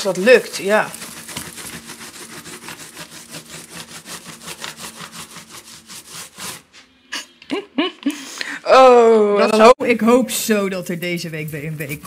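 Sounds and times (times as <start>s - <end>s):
sanding block rubbing wall: 0.0s - 6.8s.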